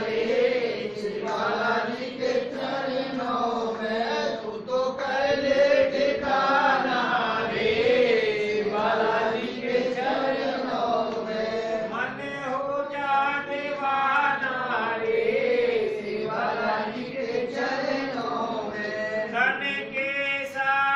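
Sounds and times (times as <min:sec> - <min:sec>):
men chanting devotional song: 0:00.0 - 0:20.9.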